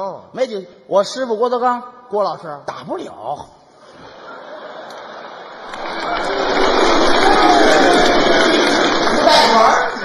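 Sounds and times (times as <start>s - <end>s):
voices rising above crowd: 3.9s - 10.0s
audience laughing and applauding: 4.0s - 10.0s.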